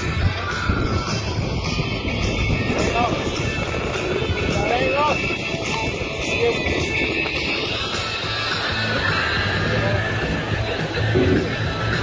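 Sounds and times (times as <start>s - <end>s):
music with regular beat: 0.0s - 12.0s.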